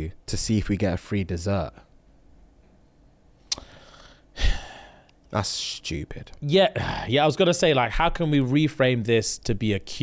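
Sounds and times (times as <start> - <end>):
forceful breath into microphone: 3.6 - 5.0.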